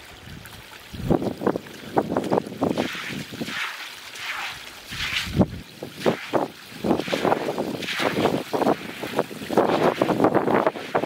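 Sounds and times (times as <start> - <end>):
broom sweeping wet concrete: 2.7 - 11.0.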